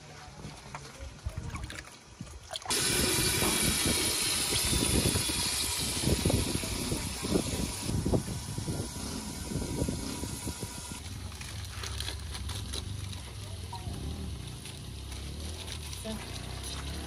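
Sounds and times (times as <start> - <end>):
pot boiling hard: 2.6 - 11.2.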